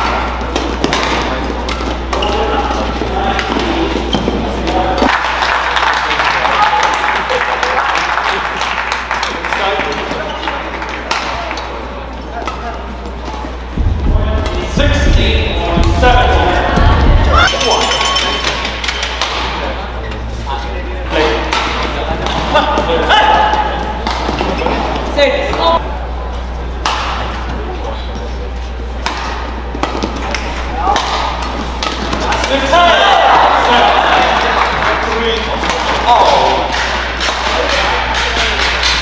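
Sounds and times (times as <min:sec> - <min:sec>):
rackets striking shuttlecock: 0:00.0 - 0:02.4, 0:17.4 - 0:19.7, 0:21.4 - 0:24.5, 0:26.8 - 0:27.5, 0:29.0 - 0:32.7, 0:35.6 - 0:39.0
court shoes squeaking: 0:00.0 - 0:05.1, 0:12.0 - 0:32.7
voices: 0:00.0 - 0:39.0.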